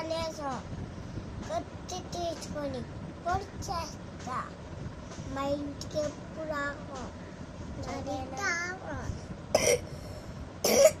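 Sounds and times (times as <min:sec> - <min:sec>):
child coughing: 0:09.5 - 0:09.9, 0:10.6 - 0:11.0.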